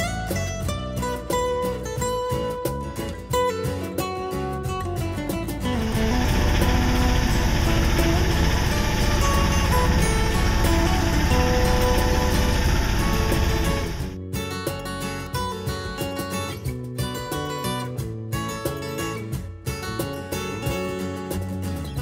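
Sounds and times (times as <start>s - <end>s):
acoustic guitar music: 0.0s - 22.0s
boat engine running: 5.7s - 14.2s.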